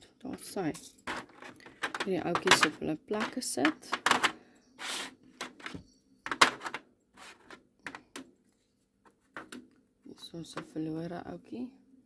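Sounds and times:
plastic containers clicking and knocking: 1.1s - 4.4s, 5.4s - 6.8s, 7.4s - 8.2s, 9.3s - 9.7s.

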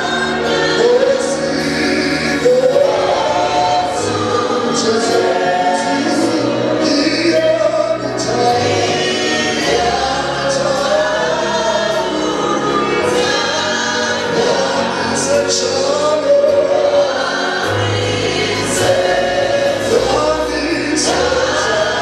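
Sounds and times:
man singing into microphone: 0.0s - 18.0s, 18.6s - 22.0s
choir singing: 0.0s - 22.0s.

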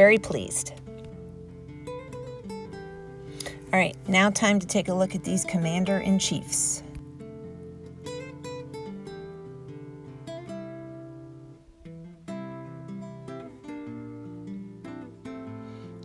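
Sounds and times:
acoustic guitar: 0.0s - 16.0s.

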